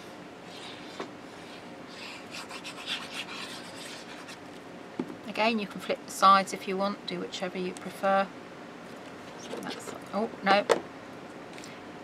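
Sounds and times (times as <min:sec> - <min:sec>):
glue pen scratching on cardstock: 0:02.3 - 0:04.4.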